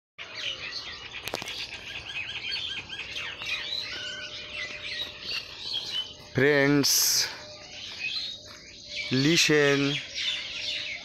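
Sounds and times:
birds chirping and twittering: 0:00.2 - 0:11.0.

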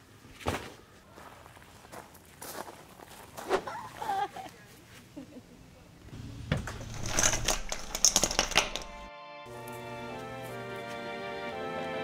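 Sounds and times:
rummaging in plastic cooler: 0:06.6 - 0:09.1
background music: 0:08.1 - 0:12.0.

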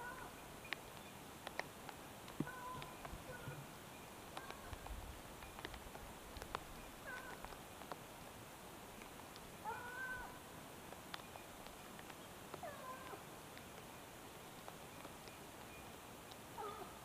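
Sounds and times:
distant hounds baying: 0:02.4 - 0:03.7, 0:07.0 - 0:07.5, 0:09.6 - 0:10.4, 0:12.6 - 0:13.2, 0:16.6 - 0:17.0.

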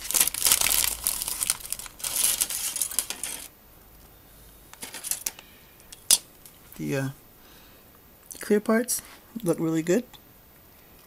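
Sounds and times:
plastic bag and paper crinkling: 0:00.0 - 0:03.5, 0:04.8 - 0:05.3.

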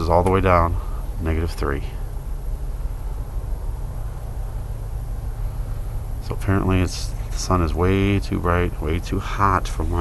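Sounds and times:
faint hiss: 0:00.0 - 0:10.0
steady low rumble: 0:00.0 - 0:10.0.

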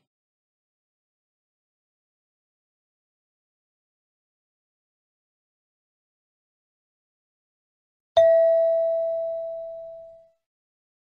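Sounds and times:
bell-like chime: 0:08.2 - 0:10.3.

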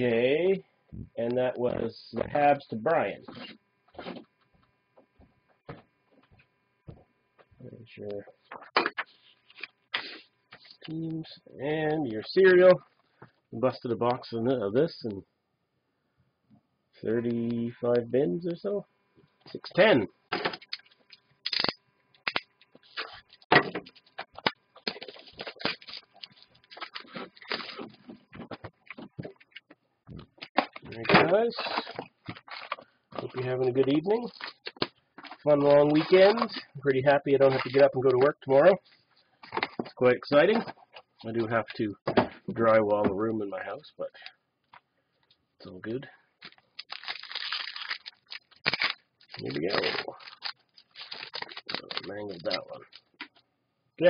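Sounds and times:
plastic shrink wrap crinkling: 0:20.6 - 0:36.7, 0:46.4 - 0:53.3.

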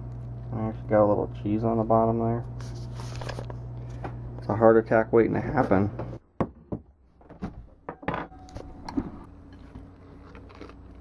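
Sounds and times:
faint steady hum: 0:00.0 - 0:06.2.

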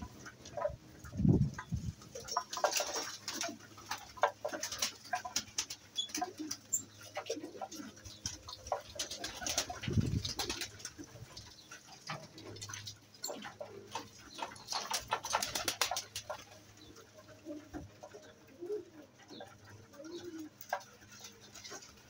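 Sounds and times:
pigeons cooing low: 0:00.0 - 0:22.0.

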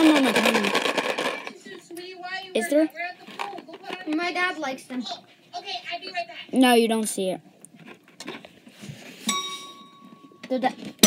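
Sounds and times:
bell-like ding: 0:09.3 - 0:10.5.

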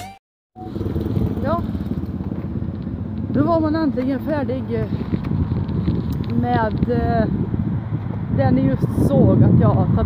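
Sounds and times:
wind buffeting microphone: 0:00.6 - 0:10.0.

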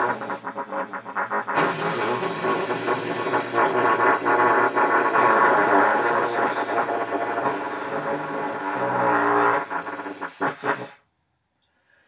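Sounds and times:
overlapping trumpet tones: 0:00.0 - 0:11.0.

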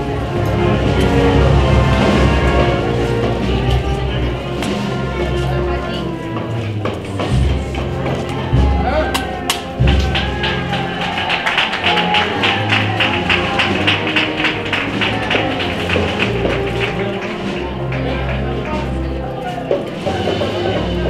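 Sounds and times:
brass and wind band playing a march: 0:00.0 - 0:21.0
steady drum beat: 0:00.6 - 0:19.0.

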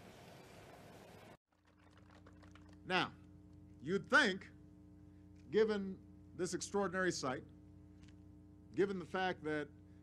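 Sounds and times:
low steady hum: 0:01.7 - 0:10.0
man speaking: 0:02.9 - 0:03.2, 0:03.8 - 0:04.6, 0:05.5 - 0:07.5, 0:08.8 - 0:09.8.

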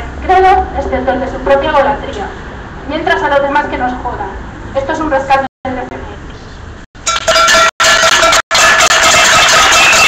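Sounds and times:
distorted street parade noise: 0:00.0 - 0:10.0.

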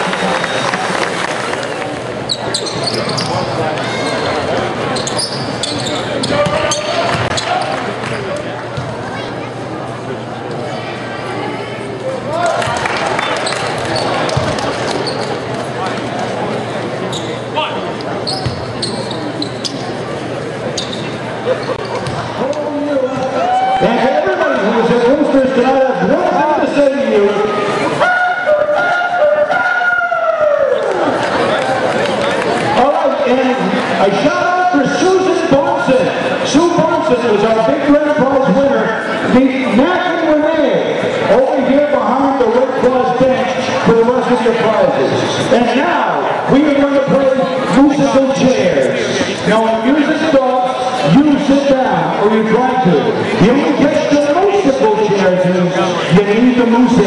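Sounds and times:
arena crowd chatter: 0:00.0 - 0:57.0.

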